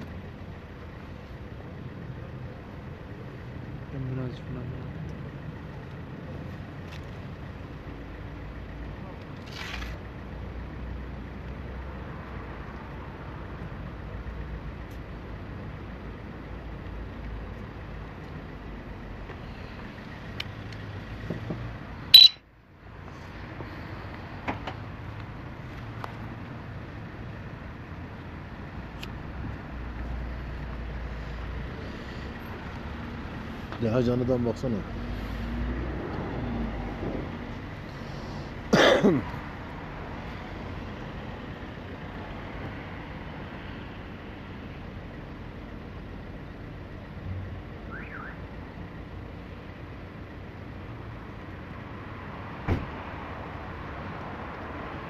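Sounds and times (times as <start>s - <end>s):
outdoor background rumble: 0.0s - 55.0s.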